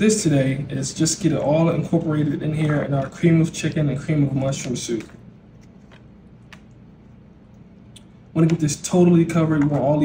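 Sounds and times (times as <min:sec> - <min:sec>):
faint wet squishing: 0:04.2 - 0:08.6.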